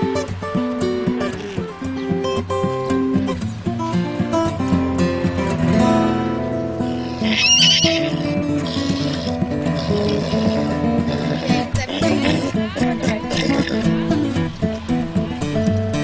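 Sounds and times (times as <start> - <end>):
background music with guitar: 0.0 - 16.0
horse whinnying: 6.9 - 13.9.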